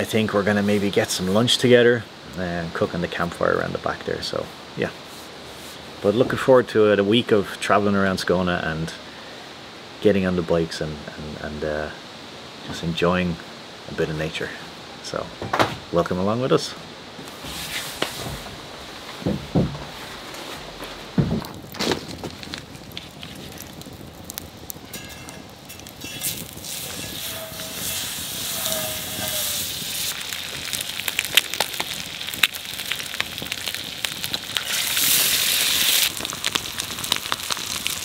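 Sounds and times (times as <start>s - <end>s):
campfire crackling and popping: 17.2s - 38.0s
knocks: 19.2s - 19.9s, 21.1s - 21.6s
eggs sizzling in a frying pan: 21.5s - 38.0s.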